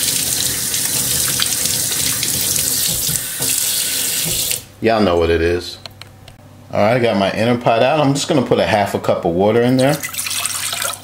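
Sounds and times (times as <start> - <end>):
faucet running into steel sink: 0.0 - 4.6, 9.8 - 11.0.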